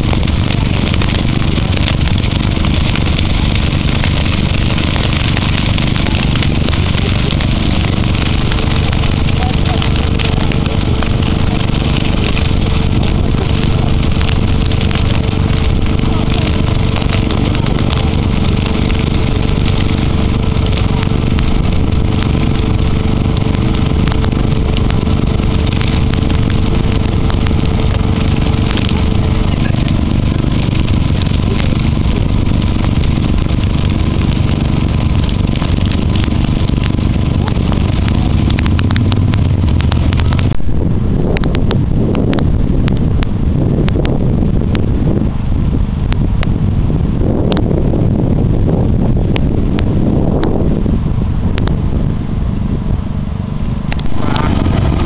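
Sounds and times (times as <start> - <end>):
grass fire roaring and crackling: 0.0 - 55.0.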